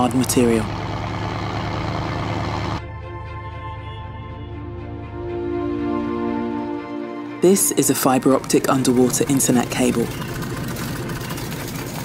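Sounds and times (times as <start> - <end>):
machinery running with low rumble: 0.0 - 2.8, 8.2 - 12.0.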